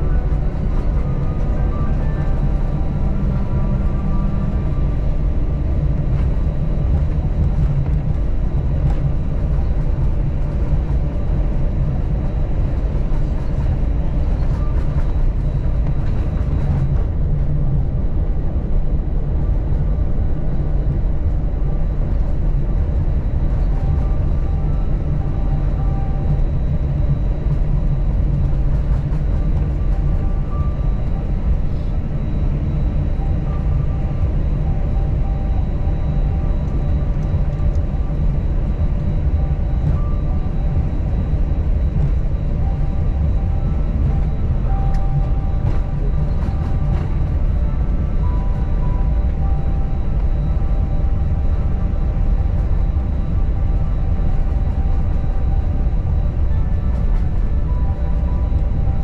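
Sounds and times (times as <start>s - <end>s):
airplane cabin rumble: 0.0s - 59.0s.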